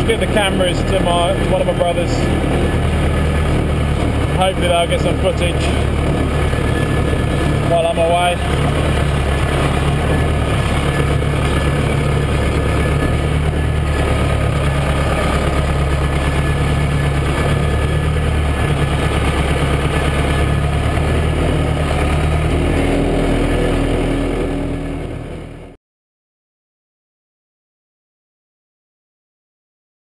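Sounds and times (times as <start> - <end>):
tractor diesel engine running: 0.0 - 25.8.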